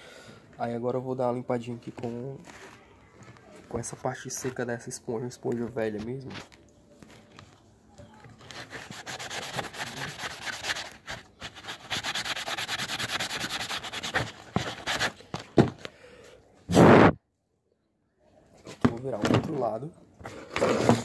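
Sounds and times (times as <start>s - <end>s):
sponge scrubbing plastic: 8.5s - 15.2s.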